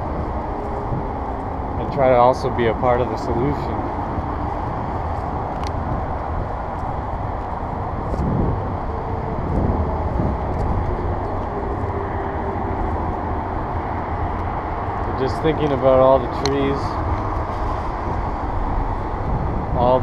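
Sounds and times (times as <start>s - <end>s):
road traffic rumble: 0.0s - 20.0s
vehicles passing: 0.0s - 20.0s.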